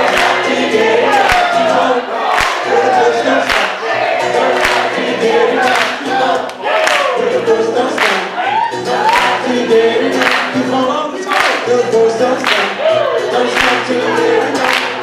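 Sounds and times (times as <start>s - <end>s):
acoustic guitar strumming: 0.0s - 15.0s
voices singing: 0.0s - 15.0s.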